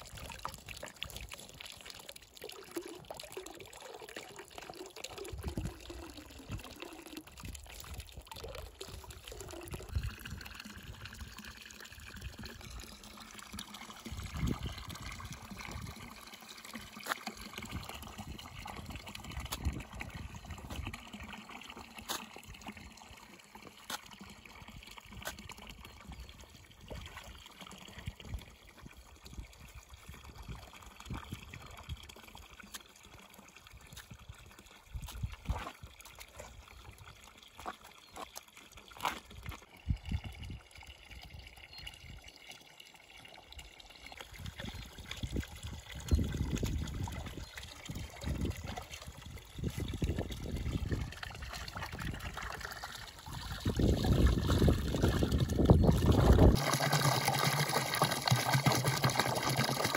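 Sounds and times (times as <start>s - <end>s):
water pouring into a trough: 0.0s - 59.9s
water splashing and sloshing: 0.0s - 59.9s.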